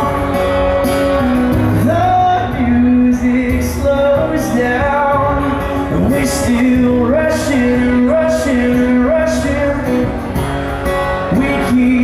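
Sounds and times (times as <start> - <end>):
man singing: 0.0 - 10.2, 11.1 - 12.0
acoustic guitar strumming: 0.0 - 12.0.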